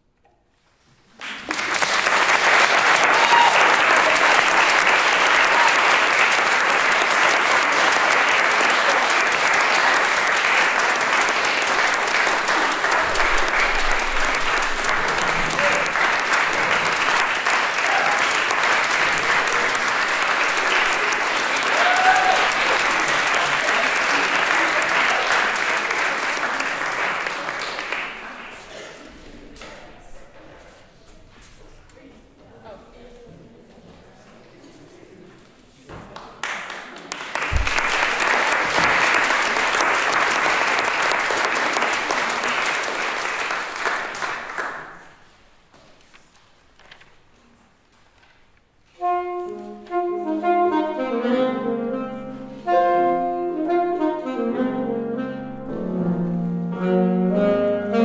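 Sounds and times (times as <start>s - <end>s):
audience applauding: 1.1s - 28.9s, 36.1s - 45.3s
people cheering: 1.4s - 28.4s, 37.3s - 44.0s.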